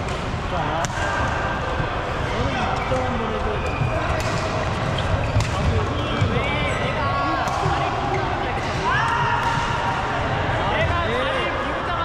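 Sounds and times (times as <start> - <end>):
shoes squeaking on floor: 4.8 - 6.9.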